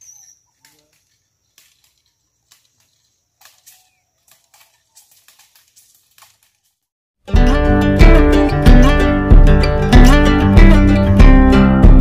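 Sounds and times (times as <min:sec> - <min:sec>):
footsteps on dry leaves: 0:00.4 - 0:06.9.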